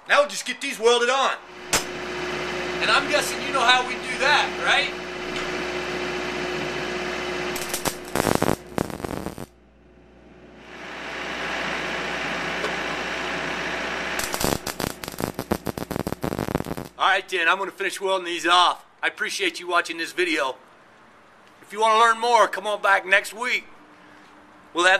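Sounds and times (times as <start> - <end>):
welding arc hissing and crackling: 1.5 - 6.3, 7.2 - 9.5, 13.6 - 17.0.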